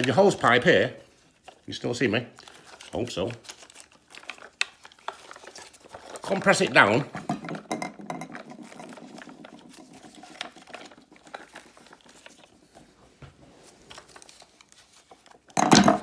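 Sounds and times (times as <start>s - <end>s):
plastic rustling: 0.0s - 7.3s, 8.3s - 16.0s.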